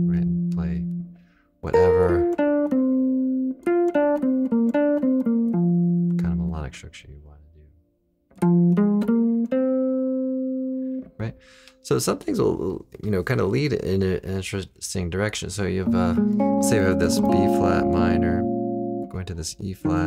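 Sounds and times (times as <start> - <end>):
electric jazz guitar: 0.0 - 6.2, 8.3 - 11.2, 15.8 - 19.1, 19.8 - 20.0.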